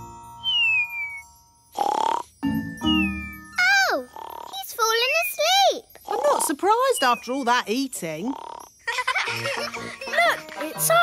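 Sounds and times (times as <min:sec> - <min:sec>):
falling whistle: 0:00.4 - 0:01.3
cartoon snoring snorts: 0:01.8 - 0:02.4, 0:04.0 - 0:04.6, 0:06.0 - 0:06.6, 0:08.2 - 0:08.7
soft background music: 0:09.2 - 0:11.0.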